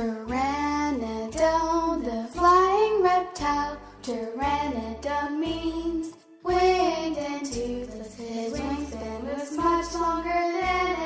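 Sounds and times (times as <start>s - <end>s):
child singing: 0.0s - 11.0s
musical accompaniment: 0.0s - 11.0s.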